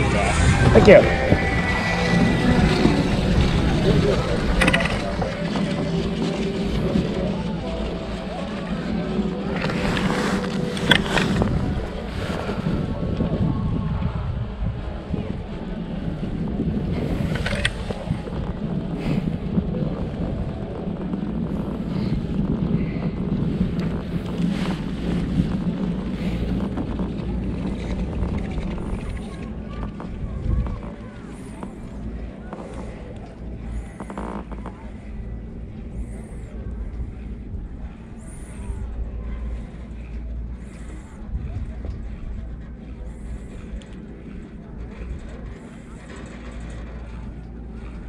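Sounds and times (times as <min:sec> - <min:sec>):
wind rumble on microphone: 0:00.0 - 0:48.0
chairlift clicks and clacks: 0:01.0 - 0:13.4, 0:16.3 - 0:48.0.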